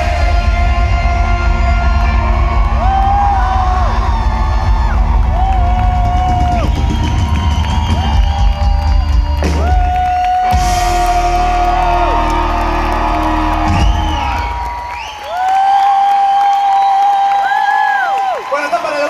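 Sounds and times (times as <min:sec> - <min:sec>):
live band music with heavy bass: 0:00.0 - 0:14.7
crowd cheering and whooping: 0:00.0 - 0:19.0.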